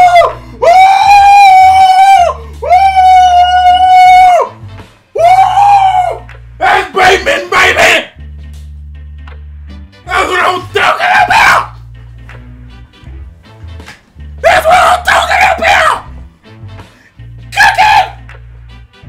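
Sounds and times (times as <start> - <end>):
man yelling excitedly: 0.0 - 4.5, 5.2 - 8.2, 10.1 - 11.8, 14.4 - 16.1, 17.5 - 18.2
background music with bass line: 0.0 - 19.0.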